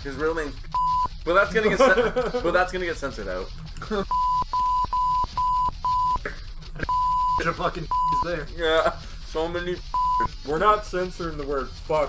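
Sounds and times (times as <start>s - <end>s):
censor bleep beeps: 0.8s - 1.1s, 4.1s - 6.2s, 6.9s - 8.2s, 9.9s - 10.3s
speech: 1.3s - 3.5s, 7.4s - 9.8s, 10.4s - 12.0s.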